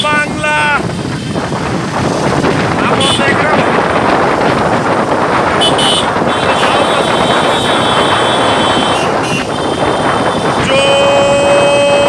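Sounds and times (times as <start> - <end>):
motorcycle engines running: 0.0 - 12.0
wind noise on microphone: 0.0 - 12.0
high horn tone: 5.6 - 10.6.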